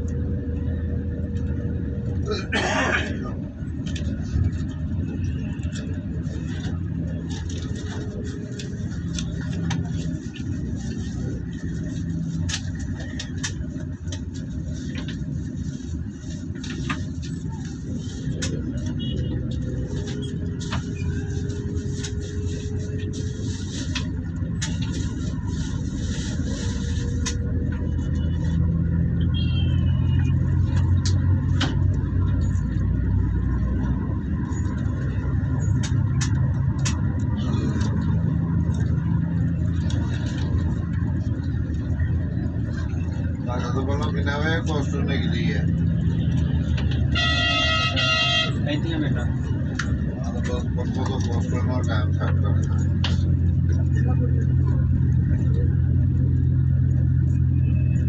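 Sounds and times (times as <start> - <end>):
vehicle engine and tyre rumble: 0.0 - 58.0.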